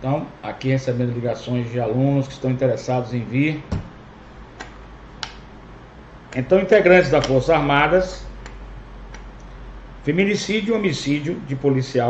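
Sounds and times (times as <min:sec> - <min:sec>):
low hum and hiss: 0:00.0 - 0:12.0
sharp clicks: 0:04.6 - 0:05.5.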